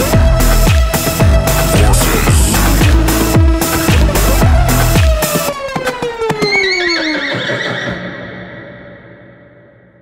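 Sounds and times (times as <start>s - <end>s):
electronic heavy beat: 0.0s - 6.0s.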